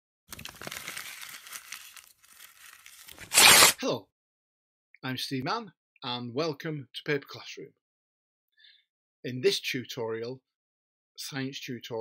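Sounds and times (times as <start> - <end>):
paper crumpling: 0.3 - 3.8
paper tearing: 0.3 - 3.8.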